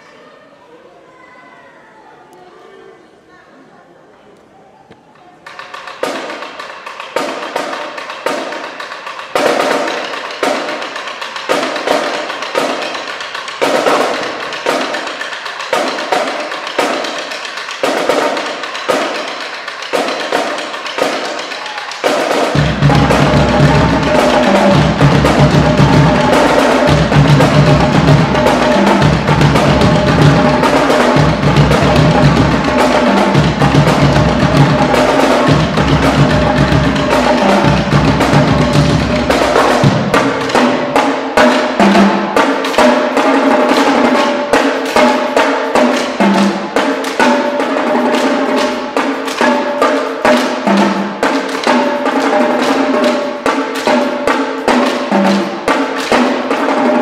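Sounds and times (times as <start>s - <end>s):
marching drumline playing: 5.4s - 57.0s
bass drums: 22.6s - 40.6s.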